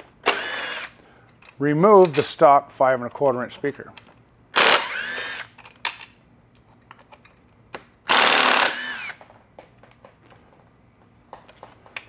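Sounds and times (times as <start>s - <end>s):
cordless drill running: 0.2s - 1.0s, 4.6s - 5.6s, 8.1s - 9.2s.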